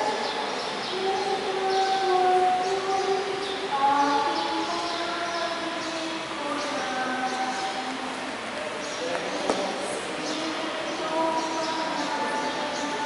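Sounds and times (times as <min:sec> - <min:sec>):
voices singing a hymn: 0:00.0 - 0:13.0.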